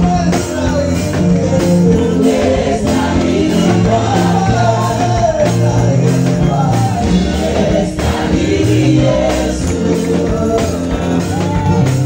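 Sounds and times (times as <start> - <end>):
congregation singing gospel: 0.0 - 12.0
musical accompaniment: 0.0 - 12.0.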